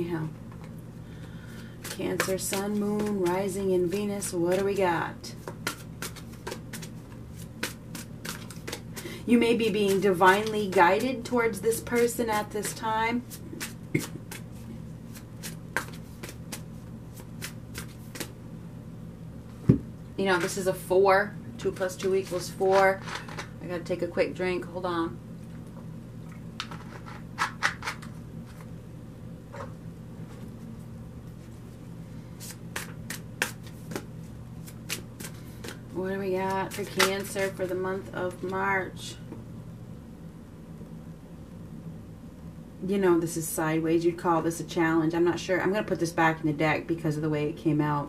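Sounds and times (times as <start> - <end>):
low steady hum: 0.0 - 48.0
cards being shuffled: 1.8 - 4.8, 5.4 - 18.4, 26.6 - 28.7, 32.4 - 35.8, 36.4 - 38.6.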